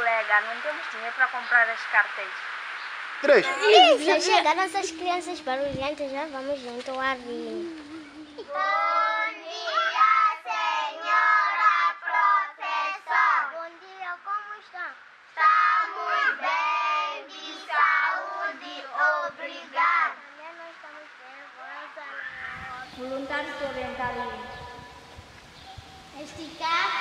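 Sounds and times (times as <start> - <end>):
children singing anthem: 3.2 - 20.2, 25.8 - 27.0.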